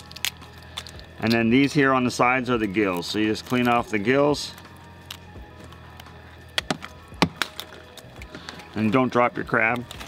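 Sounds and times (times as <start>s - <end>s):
crab shell cracking and snapping: 0.0s - 1.6s, 4.5s - 8.7s.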